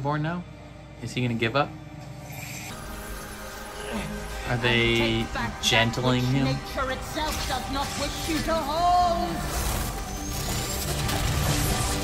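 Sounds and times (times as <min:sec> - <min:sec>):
dramatic background music: 0:00.0 - 0:12.0.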